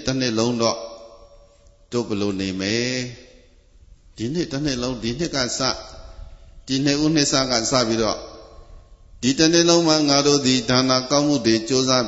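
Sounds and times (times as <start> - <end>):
man chanting over microphone: 0.0 - 3.4, 4.2 - 8.6, 9.2 - 12.0.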